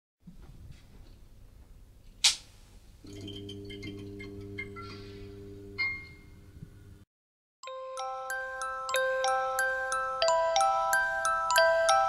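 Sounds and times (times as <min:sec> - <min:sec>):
bright ringing chime: 0:07.7 - 0:12.0
high tinkling chimes: 0:07.7 - 0:12.0.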